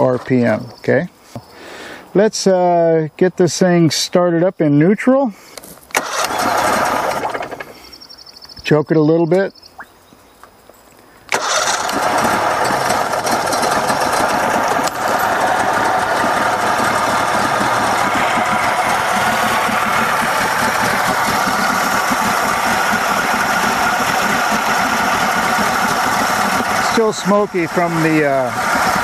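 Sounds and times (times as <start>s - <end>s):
outboard motor running: 5.9s - 8.0s, 11.3s - 29.0s.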